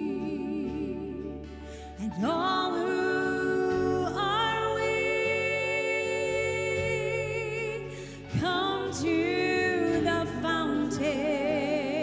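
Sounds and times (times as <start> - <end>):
woman singing into a microphone: 0.0 - 12.0.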